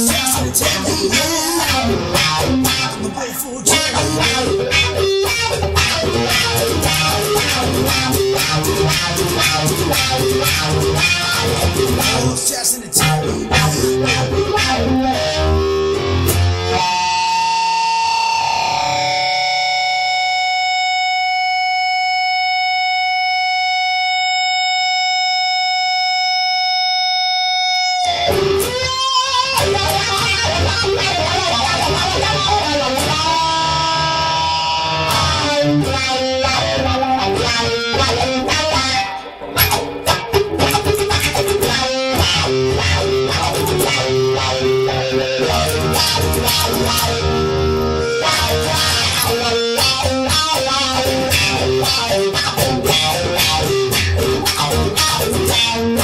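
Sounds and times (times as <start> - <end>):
electric guitar music: 0.0 - 56.0.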